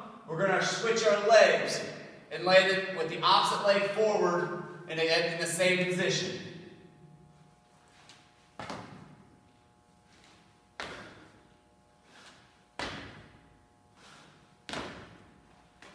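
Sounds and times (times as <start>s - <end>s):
feet thudding on rubber floor: 7.9s - 9.3s, 10.0s - 15.9s.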